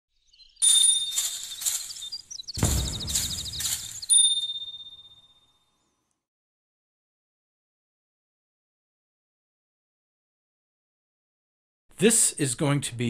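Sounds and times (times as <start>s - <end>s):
bell-like chimes ringing: 0.6s - 5.6s.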